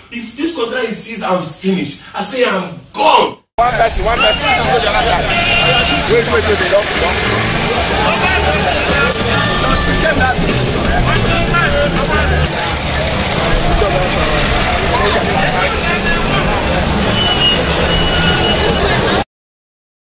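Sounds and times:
babble of voices: 3.6 - 19.2
road traffic: 3.6 - 19.2.

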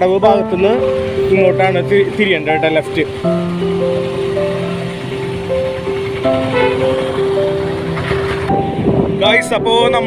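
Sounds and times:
road traffic: 0.0 - 10.0
slow background music: 0.0 - 10.0.

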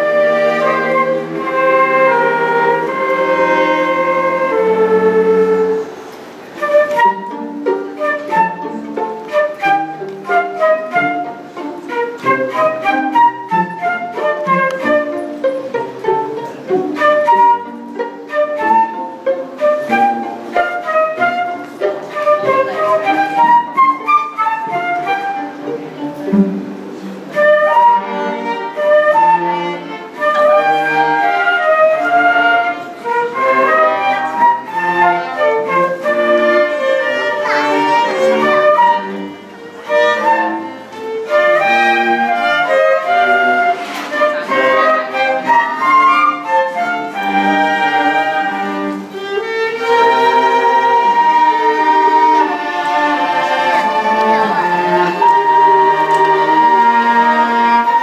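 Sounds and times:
flutes violin and cello playing: 0.0 - 58.0.

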